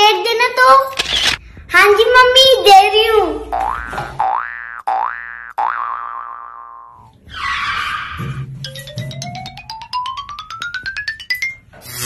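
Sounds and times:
cartoon boing twangs: 0:03.5 - 0:07.1.

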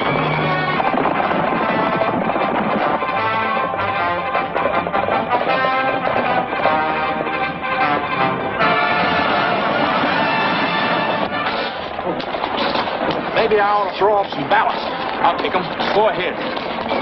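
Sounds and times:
orchestral chase music: 0:00.0 - 0:16.4
sharp cracks and knocks: 0:11.5 - 0:17.0.

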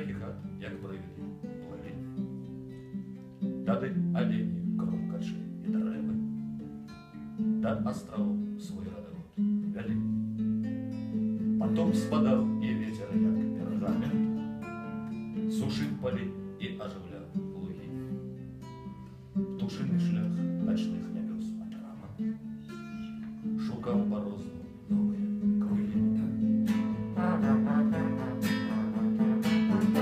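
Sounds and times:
acoustic guitar strummed and picked: 0:00.0 - 0:30.0.

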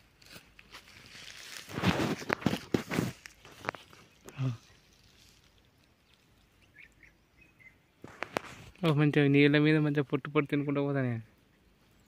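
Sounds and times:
footsteps on gravel: 0:00.0 - 0:05.6
faint outdoor background: 0:00.0 - 0:12.0.

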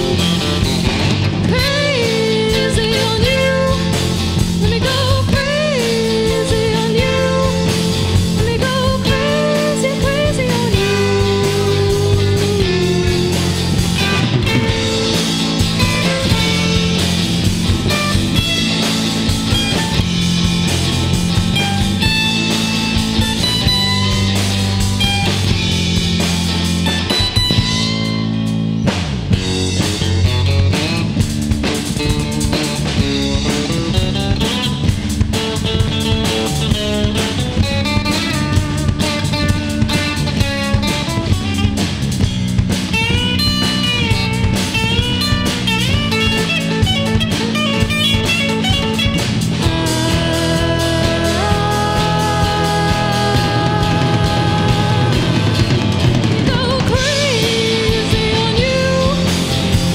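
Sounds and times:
lead guitar bending pitch: 0:00.0 - 0:59.9
rock band playing: 0:00.0 - 0:59.9.

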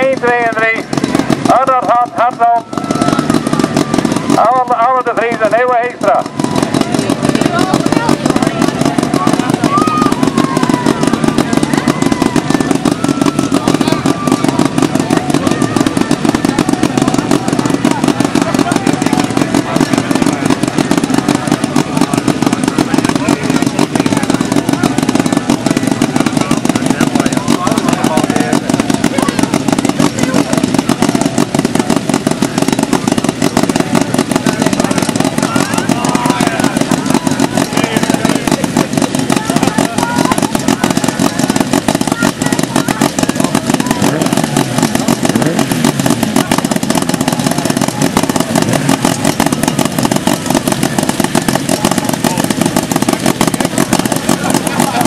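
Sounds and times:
car engine running at low revs: 0:00.0 - 0:55.0
indistinct voices: 0:00.0 - 0:55.0.

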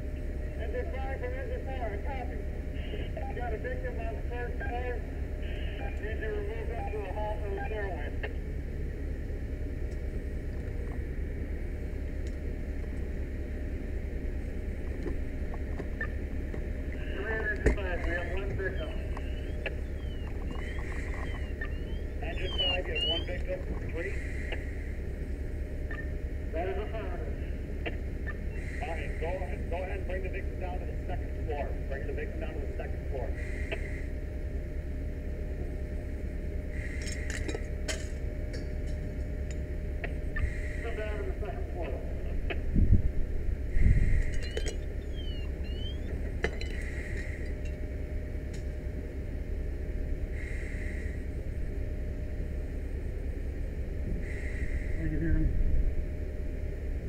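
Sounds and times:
steady low rumble: 0:00.0 - 0:57.0.

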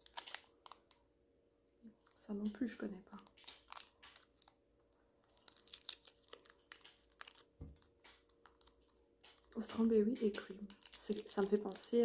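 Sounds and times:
candy wrapper crinkling: 0:00.0 - 0:01.1, 0:03.1 - 0:12.0.

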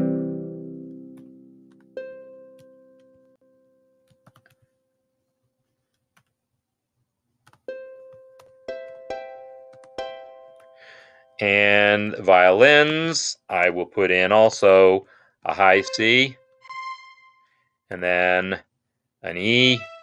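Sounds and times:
harp notes and chords: 0:00.0 - 0:03.0, 0:15.6 - 0:17.4.

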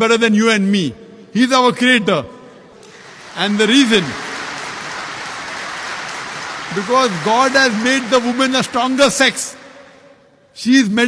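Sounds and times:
large audience applauding: 0:02.8 - 0:10.1.

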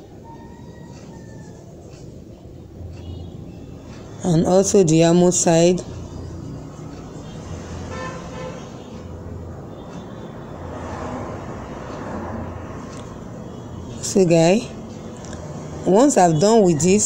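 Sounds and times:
road traffic noise: 0:00.0 - 0:17.0
horn toot: 0:07.9 - 0:08.8.

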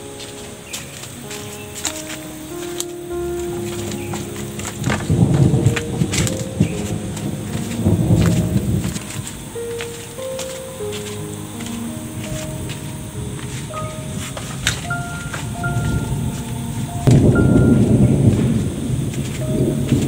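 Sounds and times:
slow background music: 0:00.0 - 0:20.0
bamboo sticks clattering: 0:00.2 - 0:15.5.

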